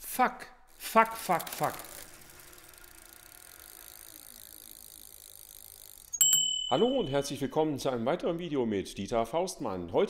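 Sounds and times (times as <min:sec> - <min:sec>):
bicycle rolling: 0:00.7 - 0:06.6.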